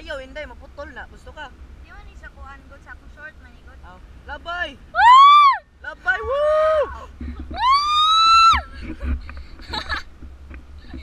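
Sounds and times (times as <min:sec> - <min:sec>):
wind on microphone: 0:06.0 - 0:11.0.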